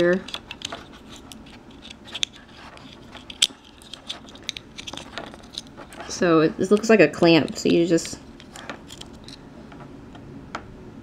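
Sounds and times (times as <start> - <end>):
handling rustle: 0.0 - 9.4.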